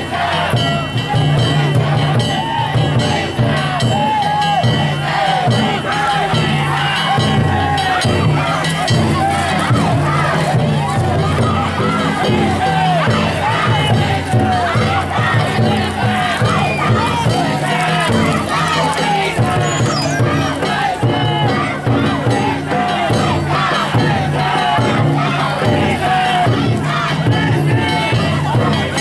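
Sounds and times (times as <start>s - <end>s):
crowd shouting together: 0.0s - 29.0s.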